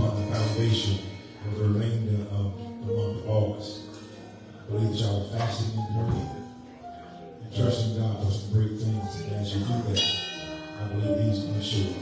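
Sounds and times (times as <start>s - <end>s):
man speaking through microphone: 0.0s - 6.6s, 7.2s - 12.0s
church music with pulsing bass: 0.0s - 12.0s
bright ringing hit: 10.0s - 11.0s.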